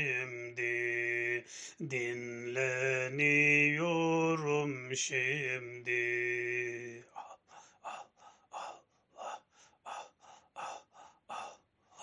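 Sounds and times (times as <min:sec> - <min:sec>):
breathy exhalations: 0:01.5 - 0:01.8, 0:07.1 - 0:12.0.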